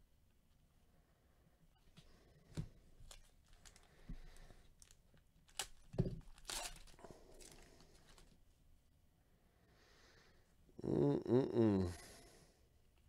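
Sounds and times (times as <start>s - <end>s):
foil card pack crinkling: 3.0s - 4.0s, 4.8s - 8.4s.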